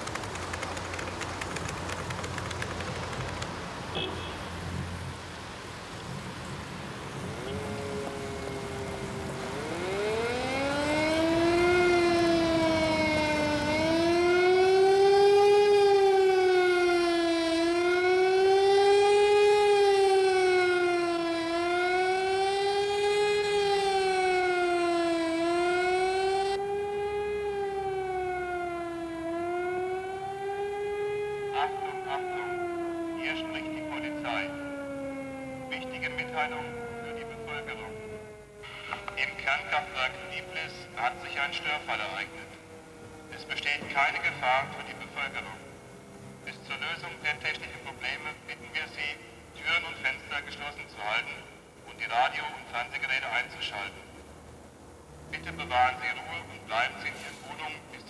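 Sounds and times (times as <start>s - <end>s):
low city traffic rumble: 0.0s - 58.0s
warning siren wailing: 7.2s - 54.3s, 55.1s - 58.0s.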